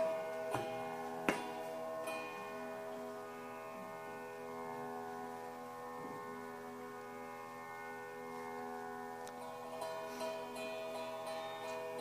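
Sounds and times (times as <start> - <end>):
ringing struck notes: 0.0 - 7.0, 9.3 - 12.0
drone of held notes: 0.0 - 12.0.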